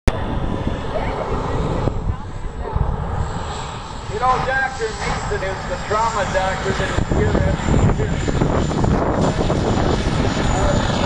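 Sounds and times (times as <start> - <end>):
distant jet engine rumbling: 0.1 - 11.0.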